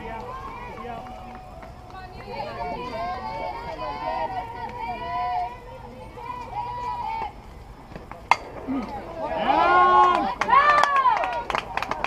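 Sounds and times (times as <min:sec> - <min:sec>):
crowd cheering: 0:00.0 - 0:12.0
voices talking and calling out: 0:00.0 - 0:12.0.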